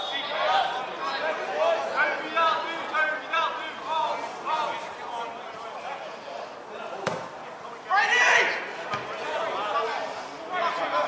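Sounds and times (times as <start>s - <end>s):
faint shouting voices: 0.0s - 11.0s
football kick thud: 7.0s - 7.4s.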